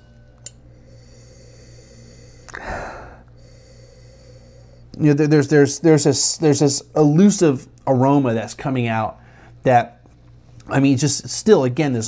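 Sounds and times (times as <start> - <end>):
faint steady hum: 0.0 - 12.0
man sniffing deeply: 0.8 - 4.8.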